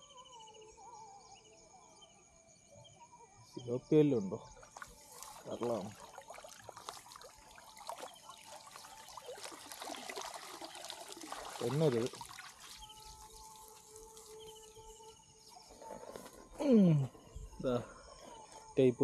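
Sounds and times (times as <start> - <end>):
water trickling and dripping: 4.6 - 15.2.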